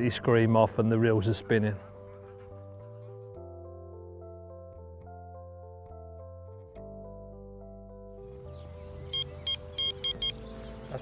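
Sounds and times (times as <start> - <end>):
bite alarm bleeps: 9.2 - 10.4.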